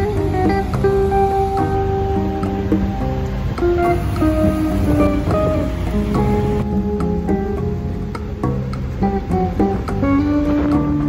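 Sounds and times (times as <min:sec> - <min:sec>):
plucked acoustic guitar melody: 0:00.0 - 0:11.0
steady low rumble: 0:00.1 - 0:09.0.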